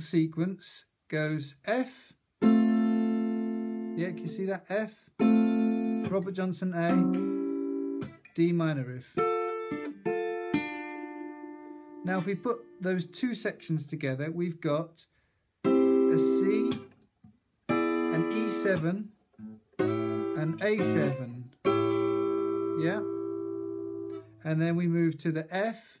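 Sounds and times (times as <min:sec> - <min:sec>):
acoustic guitar plucks ringing: 0:02.4 - 0:04.4, 0:05.2 - 0:08.2, 0:09.2 - 0:13.2, 0:15.6 - 0:16.9, 0:17.7 - 0:24.4
acoustic guitar chord ringing: 0:17.7 - 0:18.8, 0:19.4 - 0:24.4.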